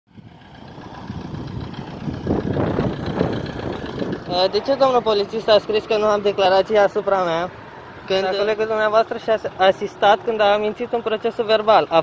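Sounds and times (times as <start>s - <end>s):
vehicle engine rumbling: 0.1s - 12.0s.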